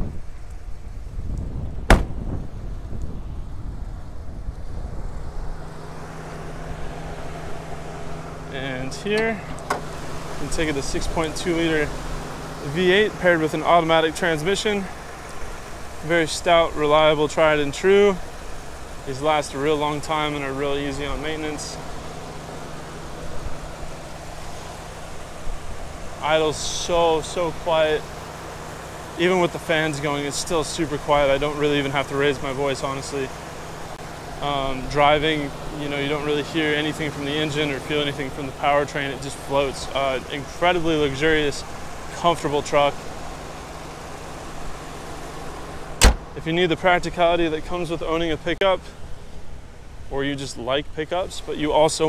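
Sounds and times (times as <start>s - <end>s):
low rumbling noise: 0.0s - 28.0s
cooling fan air rush: 0.0s - 52.0s
engine idling hum: 0.0s - 52.0s
truck door thud: 1.8s - 2.4s, 9.1s - 10.0s, 46.0s - 46.4s.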